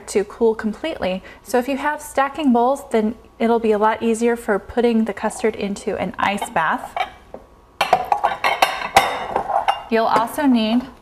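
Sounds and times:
bowls clinking together: 7.8s - 10.4s.

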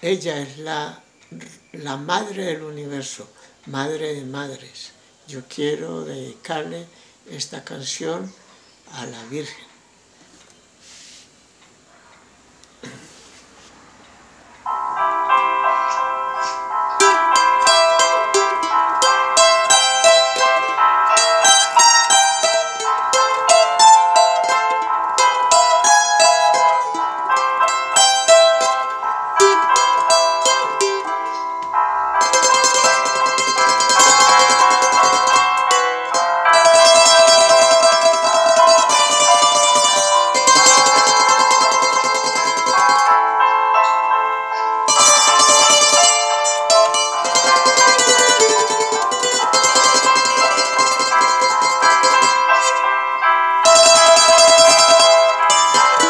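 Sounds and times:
plucked string instrument melody: 14.7s - 56.0s.

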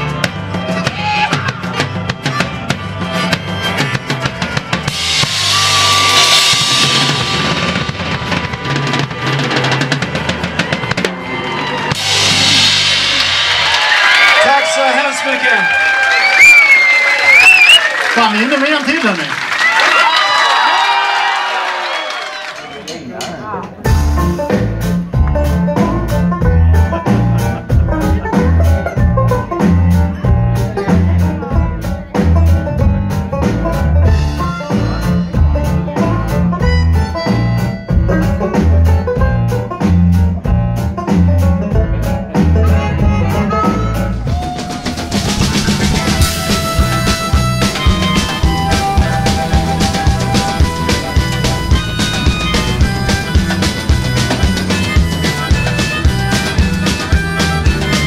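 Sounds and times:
drum kit: 0.0s - 17.8s, 23.7s - 58.0s
live band playing: 0.0s - 58.0s.

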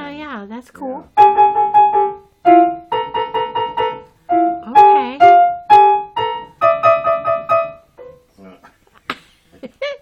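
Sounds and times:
electronic keyboard piano notes: 1.1s - 8.3s.

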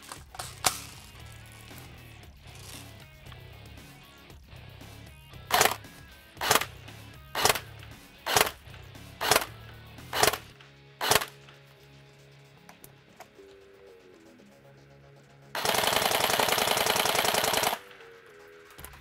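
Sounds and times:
background music: 0.0s - 19.0s
airsoft rifle single shots: 6.4s - 6.7s, 7.4s - 7.7s, 8.3s - 8.6s, 9.2s - 11.4s.

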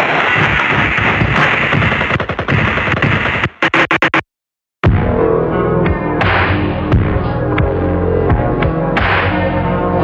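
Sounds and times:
harsh distorted glitch noise: 0.0s - 4.3s.

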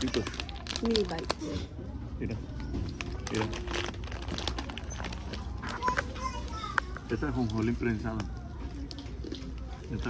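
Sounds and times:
plastic packaging crinkling: 0.0s - 1.6s, 2.9s - 6.1s.

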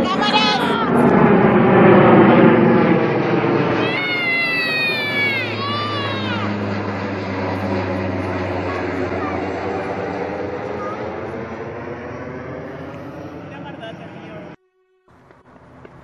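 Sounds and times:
jet airliner engines overhead: 0.0s - 16.0s
high falling cry: 3.7s - 7.0s.

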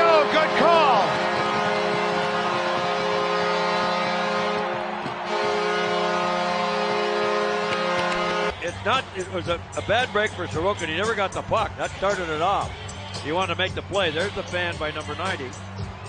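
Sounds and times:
goal horn blaring: 0.0s - 8.9s
crowd cheering: 0.0s - 12.6s.

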